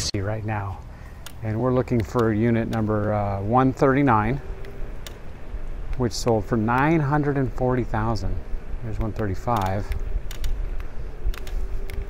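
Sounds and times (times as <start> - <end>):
faint steady hum: 0.0 - 12.0
wind and road noise: 0.0 - 12.0
light clicks and creaks: 0.7 - 7.2, 7.8 - 12.0.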